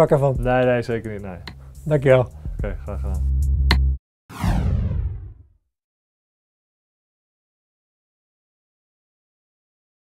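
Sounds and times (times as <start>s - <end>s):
downward whoosh: 4.3s - 5.4s.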